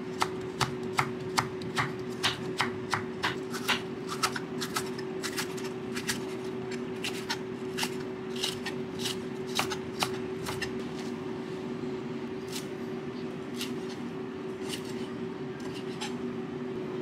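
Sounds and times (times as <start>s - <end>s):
knife chopping on wooden board: 0.2s - 5.4s.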